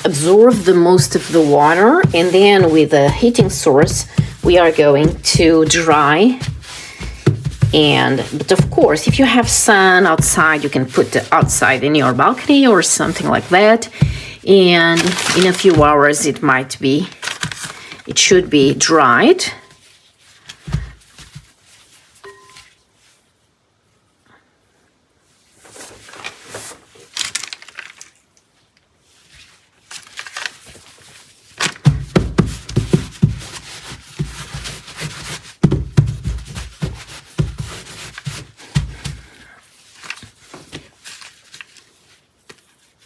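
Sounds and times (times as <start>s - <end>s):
dull thuds of palms pressing: 0.0s - 16.1s, 20.5s - 21.8s, 31.6s - 39.5s
towel rubbing on paper: 0.0s - 16.3s, 32.5s - 40.4s.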